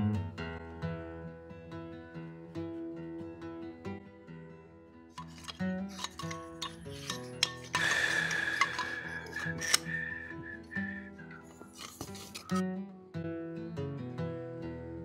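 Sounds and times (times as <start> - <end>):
acoustic guitar music: 0.0 - 15.0
grinder on steel shaft: 5.2 - 12.6.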